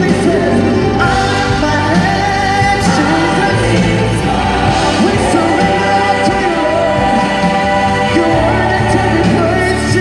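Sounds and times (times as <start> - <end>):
gospel choir singing: 0.0 - 10.0
musical accompaniment: 0.0 - 10.0.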